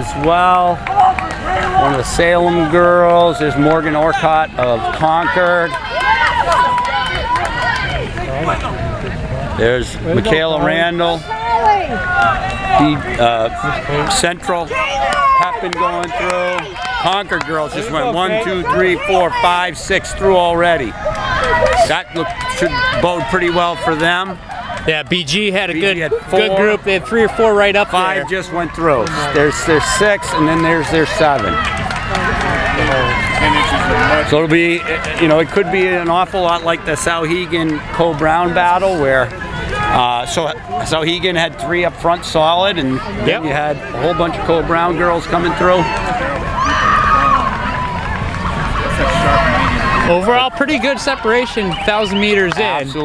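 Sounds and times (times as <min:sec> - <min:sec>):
spectators shouting encouragement: 0:00.0 - 0:53.0.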